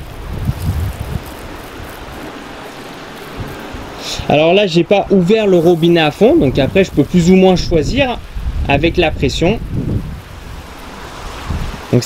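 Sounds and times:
water spraying from hose: 0.0 - 12.0.

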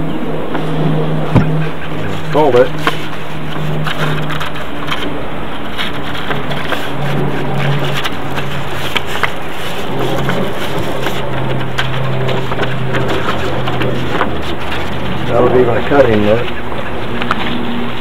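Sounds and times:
steady low hum: 0.0 - 18.0
sandpaper crinkling: 1.9 - 18.0.

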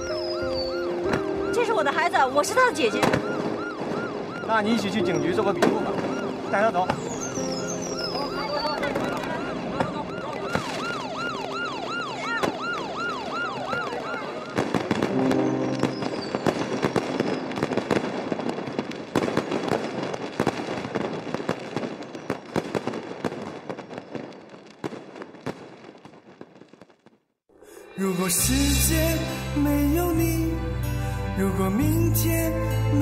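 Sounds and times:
police siren wailing: 0.0 - 17.3
fireworks bangs and crackles: 0.0 - 27.4.

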